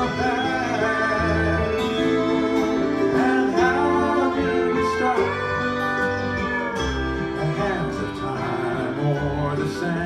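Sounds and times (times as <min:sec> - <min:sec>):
fiddle melody: 0:00.0 - 0:10.0
strummed acoustic guitar: 0:00.0 - 0:10.0
upright bass: 0:00.0 - 0:10.0.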